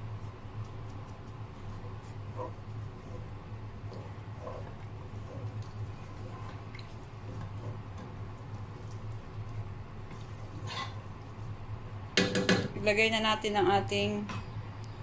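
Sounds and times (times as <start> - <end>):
low steady hum: 0.0 - 15.0
spoon stirring liquid in pot: 1.6 - 11.6.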